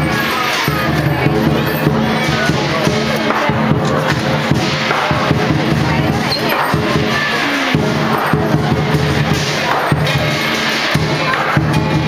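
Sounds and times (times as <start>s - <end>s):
big drum beat: 0.0s - 12.0s
clashing cymbals: 0.0s - 12.0s
crowd voices: 0.0s - 12.0s
gong: 0.0s - 12.0s.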